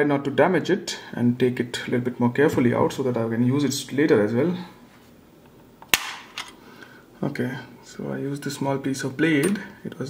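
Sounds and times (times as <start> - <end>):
sharp plastic snap: 5.8 - 6.5.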